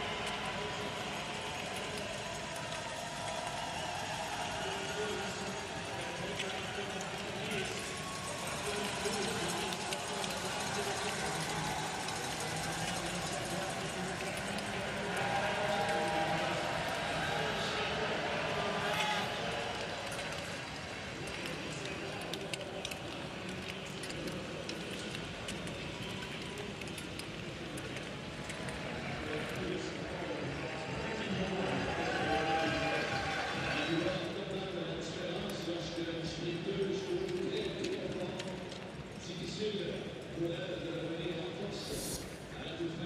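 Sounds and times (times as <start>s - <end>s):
crowd cheering: 0.0s - 38.7s.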